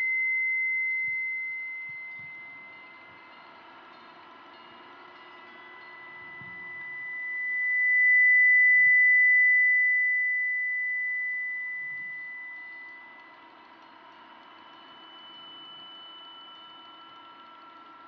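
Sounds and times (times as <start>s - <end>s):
high steady sine tone: 0.0s - 18.0s
quieter steady tones: 0.0s - 18.0s.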